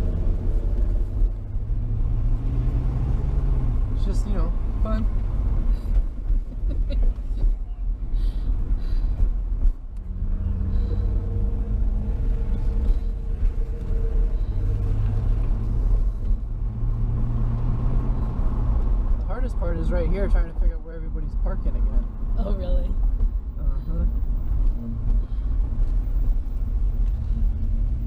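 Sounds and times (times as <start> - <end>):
car engine low rumble: 0.0 - 28.0.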